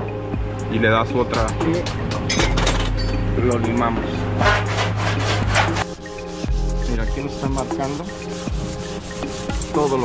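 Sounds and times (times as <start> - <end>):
background music with bass: 0.0 - 10.0
file rasping on metal: 4.4 - 10.0.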